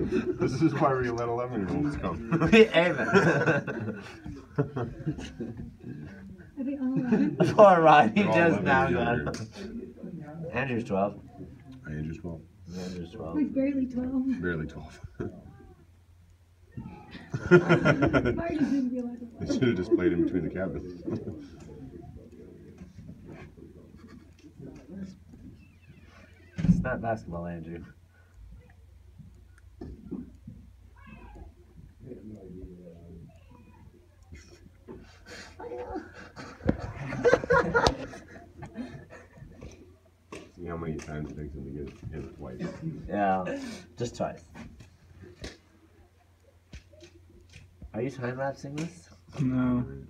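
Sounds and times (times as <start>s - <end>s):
man laughing: 2.3s - 5.6s, 17.1s - 18.7s, 35.8s - 39.6s
distant children's voices: 15.2s - 16.0s, 16.6s - 17.4s, 28.4s - 36.4s.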